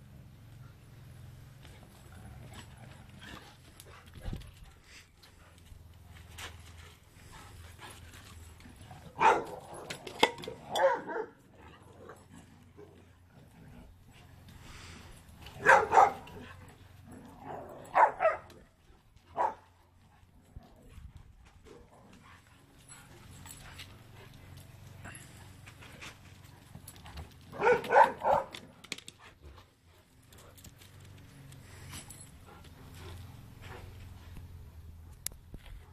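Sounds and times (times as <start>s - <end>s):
dogs barking: 9.0s - 11.5s, 15.6s - 16.7s, 17.3s - 18.6s, 19.3s - 19.7s, 27.5s - 28.6s.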